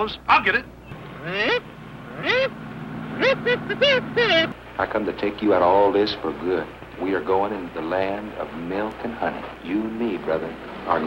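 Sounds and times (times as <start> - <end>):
kazoo buzzing a tune: 0.9 - 4.6
car engine hum: 0.9 - 5.0.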